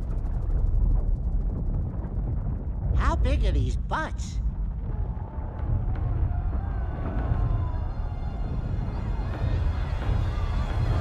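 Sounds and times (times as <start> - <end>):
deep low rumble drone: 0.0 - 3.0.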